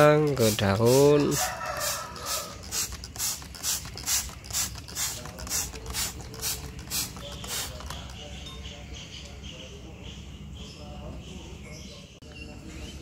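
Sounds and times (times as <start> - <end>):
spray bottle hissing mist: 0.2 - 8.2.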